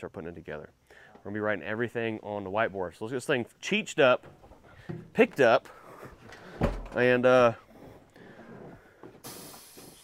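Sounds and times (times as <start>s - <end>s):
faint air hiss: 0.0s - 10.0s.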